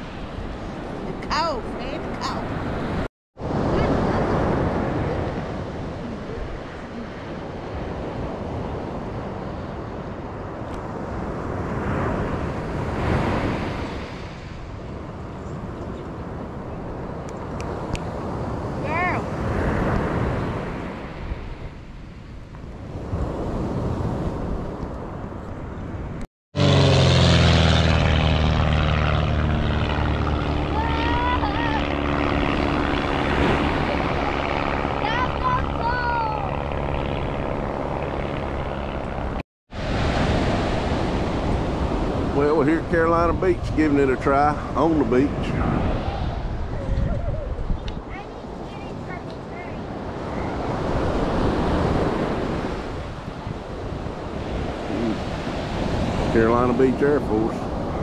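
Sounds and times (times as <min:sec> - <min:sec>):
propeller airplane engine drone: 0:00.0 - 0:23.3, 0:24.4 - 0:58.0
wind and surf noise: 0:00.0 - 0:58.0.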